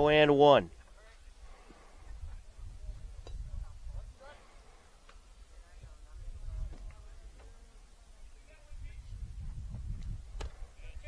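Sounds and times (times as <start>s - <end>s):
faint distant voices: 0.6s - 11.0s.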